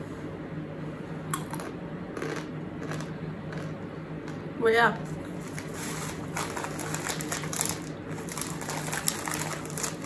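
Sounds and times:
crunchy noodles being eaten: 1.3s - 3.8s
packet crackling: 5.5s - 10.0s.

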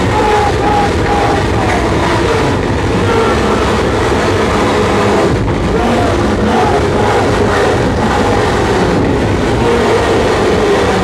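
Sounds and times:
loud wall of harsh noise: 0.0s - 11.0s.

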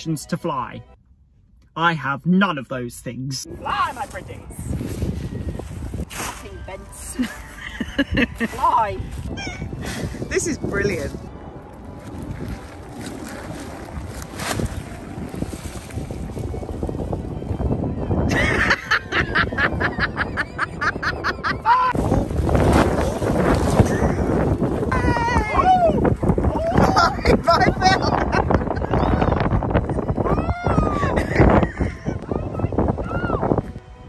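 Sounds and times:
wind buffeting microphone: 3.4s - 34.0s.

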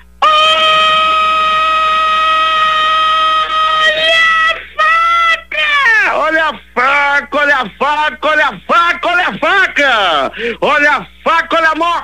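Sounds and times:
person calling out ohhh: 0.2s - 6.1s.

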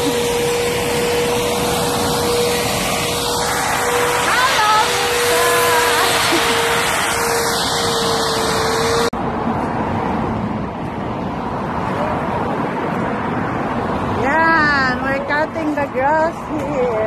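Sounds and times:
electric hedge trimmer buzzing: 0.0s - 9.1s.

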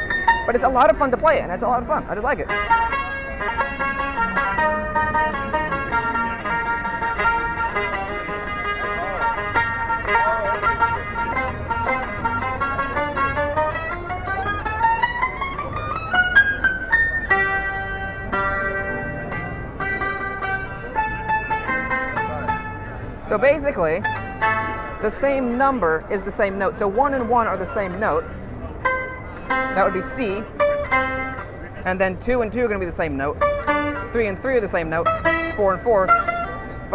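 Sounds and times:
amplified zither plucks: 0.0s - 36.9s.

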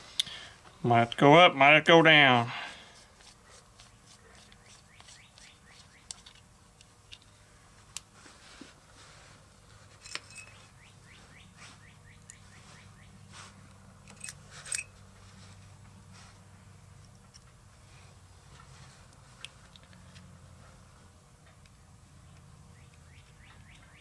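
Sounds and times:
low steady hum: 0.0s - 24.0s.

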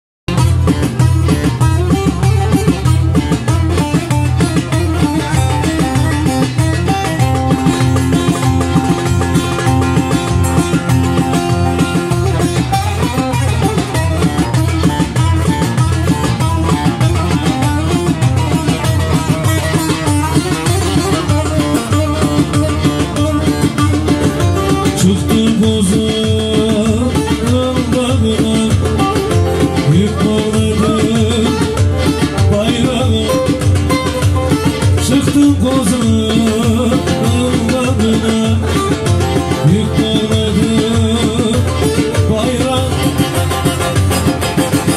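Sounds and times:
keyboard accompaniment with beat: 0.3s - 44.9s
plucked lute melody: 0.3s - 44.9s.

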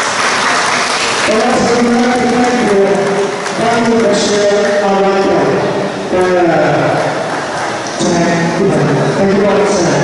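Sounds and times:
announcer's voice over loudspeakers: 1.2s - 7.2s, 8.0s - 10.0s.

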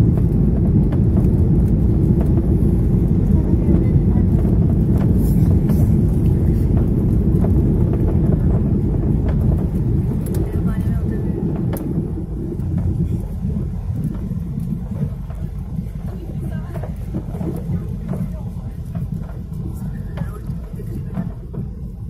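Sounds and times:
airplane cabin engine rumble: 0.0s - 22.0s.

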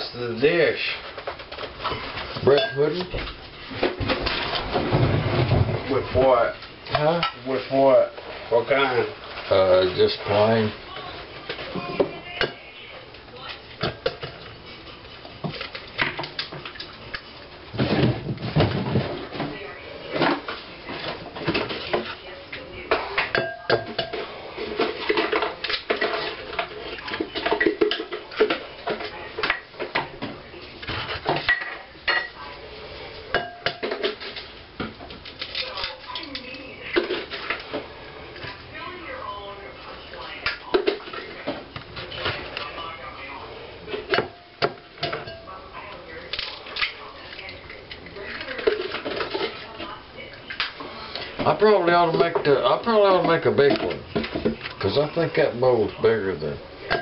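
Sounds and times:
utensils clinking on glass bowl: 2.4s - 3.1s, 23.2s - 29.6s, 33.3s - 34.5s, 44.0s - 45.6s.

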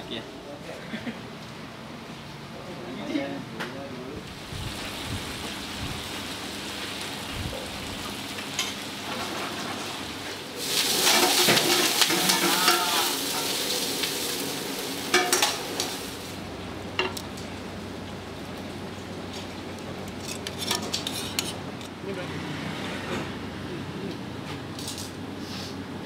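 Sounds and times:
food frying and sizzling: 4.2s - 21.8s
metal tongs clinking bowl: 15.1s - 15.6s.

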